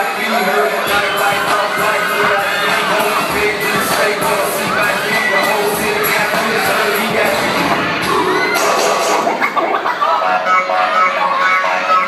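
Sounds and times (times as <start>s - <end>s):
audience cheering and shouting: 0.0s - 12.0s
hip hop dance music: 0.0s - 12.0s.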